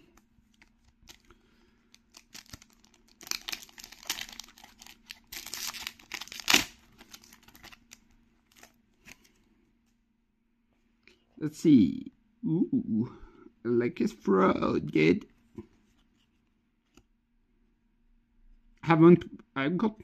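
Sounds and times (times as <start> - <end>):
plastic wrapper crinkling and tearing: 0.1 - 9.3.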